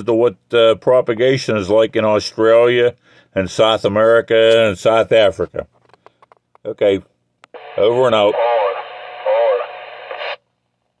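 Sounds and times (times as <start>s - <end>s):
radio static: 7.4s - 10.5s
tinny voice over radio: 7.6s - 10.4s.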